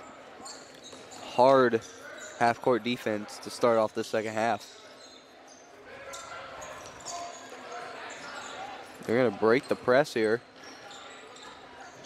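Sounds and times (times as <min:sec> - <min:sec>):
murmur of crowd and voices: 0:00.0 - 0:12.0.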